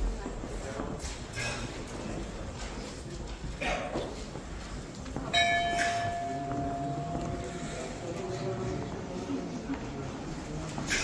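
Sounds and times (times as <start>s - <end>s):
temple bell ringing: 5.3s - 8.6s.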